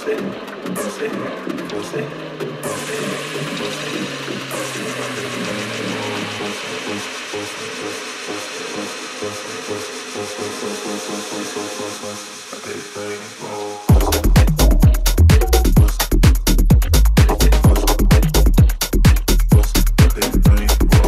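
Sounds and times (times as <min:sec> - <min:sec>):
repeating synth pattern: 0:00.0 - 0:07.8
bass line: 0:00.0 - 0:12.0, 0:13.9 - 0:21.0
noise layer: 0:00.0 - 0:21.0.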